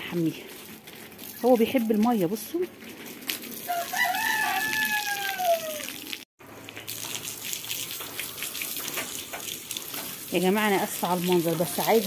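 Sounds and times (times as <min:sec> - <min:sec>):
water spraying from hose: 0:00.0 - 0:12.0
rooster crowing: 0:03.7 - 0:06.0.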